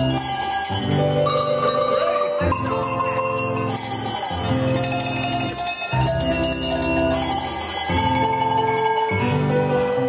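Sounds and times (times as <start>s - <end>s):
handbells playing a tune: 0.0s - 10.0s.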